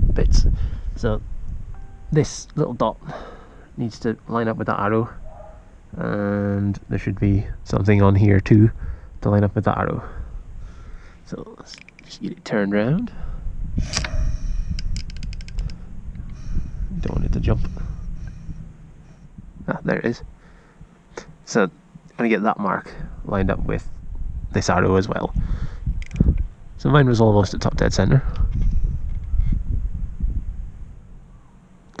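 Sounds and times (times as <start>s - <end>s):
socket ratchet clicking: 11.7s - 12.1s, 13.9s - 15.8s, 26.0s - 26.4s
low rumble: 13.0s - 22.1s, 22.9s - 32.0s
faint clicks: 14.8s - 16.4s.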